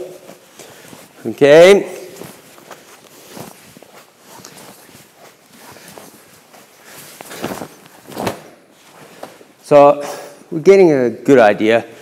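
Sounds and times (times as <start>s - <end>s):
bare feet shuffling on mats: 0.0s - 9.7s
cloth uniforms rustling: 0.0s - 10.6s.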